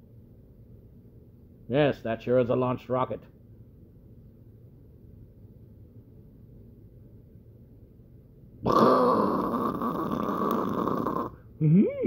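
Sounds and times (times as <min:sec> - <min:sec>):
person growling: 0:08.6 - 0:12.0.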